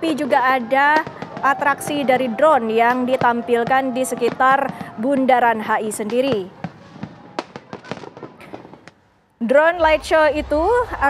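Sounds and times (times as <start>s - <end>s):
firecrackers popping: 0.0s - 9.0s.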